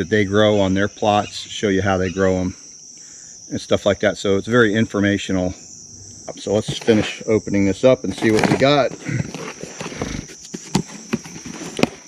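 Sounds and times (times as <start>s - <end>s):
high insect buzz: 0.0s - 12.0s
cardboard flaps rustling: 6.5s - 7.2s, 8.1s - 12.0s.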